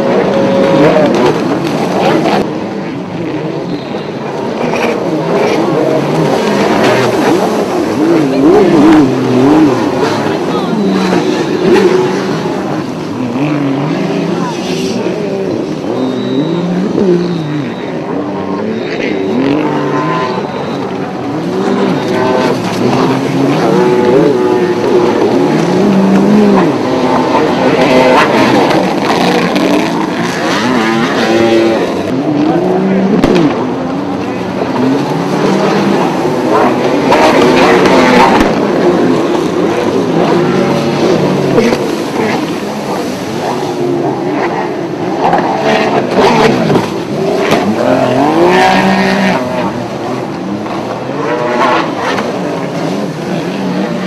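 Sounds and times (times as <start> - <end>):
jet ski engines racing: 0.0 - 54.0.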